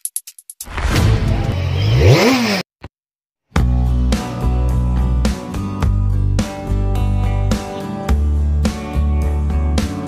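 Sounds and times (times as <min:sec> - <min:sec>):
engine revving: 0:00.7 - 0:02.7.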